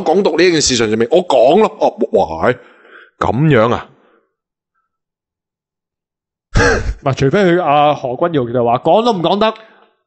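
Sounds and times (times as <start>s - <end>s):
man clearing throat: 6.6s - 7.0s.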